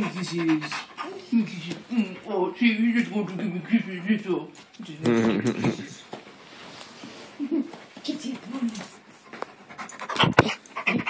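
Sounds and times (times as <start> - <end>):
dog panting: 0.0 - 3.8, 8.6 - 11.0.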